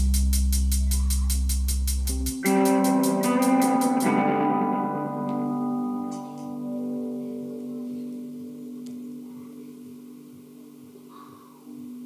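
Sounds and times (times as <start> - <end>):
electric guitar and bass chord: 2.1 - 9.7.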